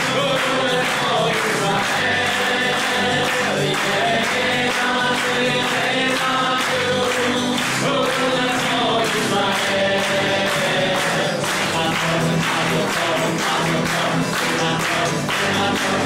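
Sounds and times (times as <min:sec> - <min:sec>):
group singing: 0:00.0 - 0:16.0
people clapping in time: 0:00.0 - 0:16.0.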